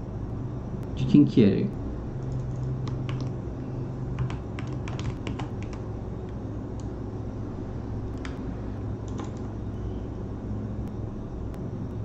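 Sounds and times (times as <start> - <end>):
low steady hum: 0.0 - 12.0
keyboard typing: 2.2 - 3.4, 4.2 - 7.0, 8.1 - 8.4, 9.0 - 9.6.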